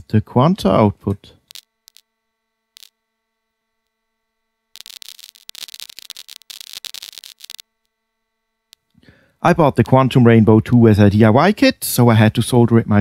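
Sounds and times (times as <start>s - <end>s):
dense irregular electronic crackle: 0.1s - 11.2s.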